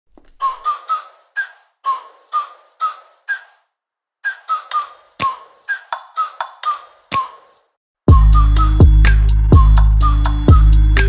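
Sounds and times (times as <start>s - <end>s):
high whistle-like melody: 8.1s - 11.0s.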